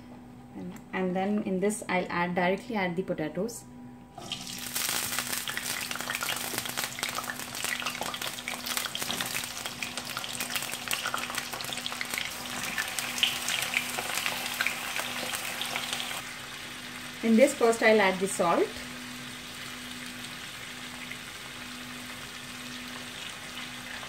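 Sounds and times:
potato slices sizzling in hot oil: 4.2s - 24.0s.

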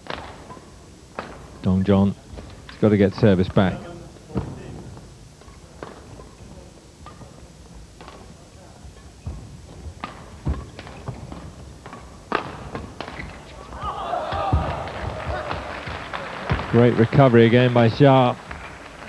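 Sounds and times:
rackets striking shuttlecock: 0.0s - 1.6s, 9.0s - 13.6s
shoes landing on court: 9.2s - 16.9s
crowd voices: 13.5s - 18.4s.

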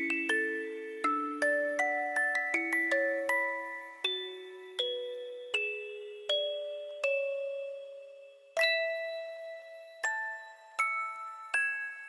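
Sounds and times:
music box melody: 0.0s - 12.0s.

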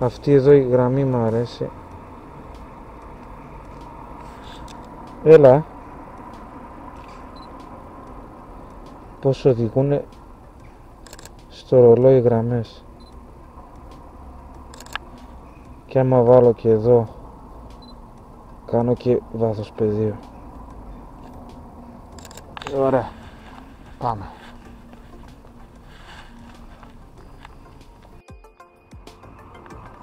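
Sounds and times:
faint street background: 0.0s - 30.0s
camera shutter click: 11.0s - 11.4s, 14.7s - 15.1s, 22.1s - 22.8s.

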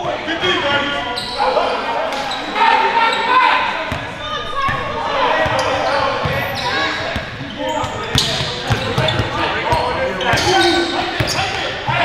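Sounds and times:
indistinct players' voices: 0.9s - 12.0s.

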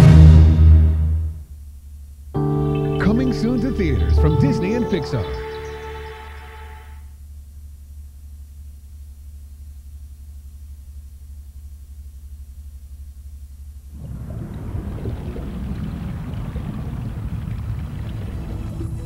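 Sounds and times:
low steady hum: 0.0s - 19.0s
deep underwater rumbling: 13.9s - 19.0s.

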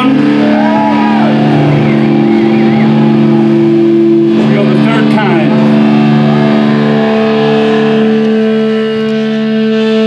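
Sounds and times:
distorted guitar and bass drone: 0.0s - 10.0s.

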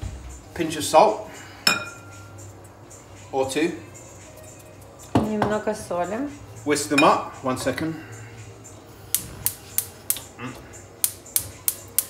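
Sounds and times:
gas hob igniter clicking: 9.1s - 10.3s, 11.0s - 12.0s.

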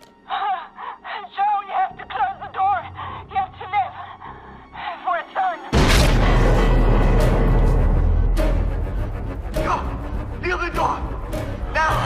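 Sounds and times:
woman gasping and whimpering: 0.2s - 1.4s
deep rumbling blast: 5.8s - 9.5s.

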